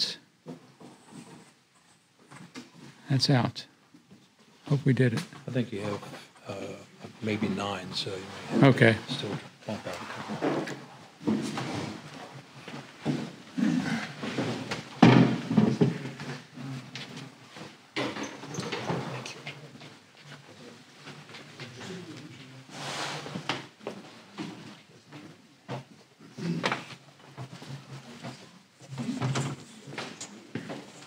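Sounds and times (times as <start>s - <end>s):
prints rustling and sliding: 7.3s - 14.9s.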